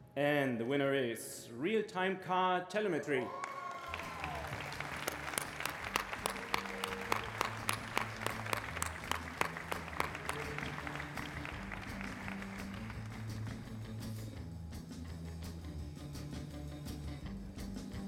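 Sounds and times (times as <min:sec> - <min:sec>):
audience applauding: 0:03.2 - 0:13.7
music with low notes: 0:04.5 - 0:18.0.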